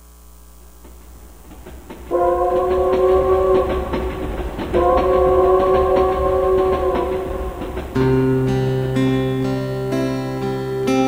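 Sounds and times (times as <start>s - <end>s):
low rhythmic clatter: 0.5s - 11.0s
train horn blasts: 0.9s - 10.5s.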